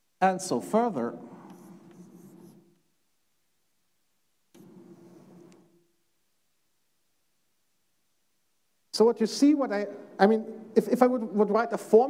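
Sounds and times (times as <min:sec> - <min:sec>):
chalk scratching on blackboard: 0:01.2 - 0:02.8, 0:04.6 - 0:05.7.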